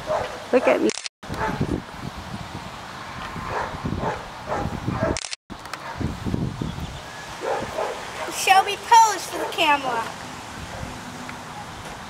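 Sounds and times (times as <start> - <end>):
camera shutter click: 0.8 - 1.1, 5.2 - 5.4.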